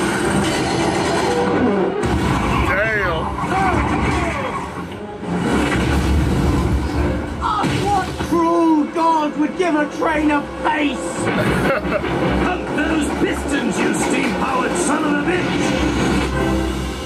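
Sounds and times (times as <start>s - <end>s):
cartoon music and sound effects: 0.0s - 17.0s.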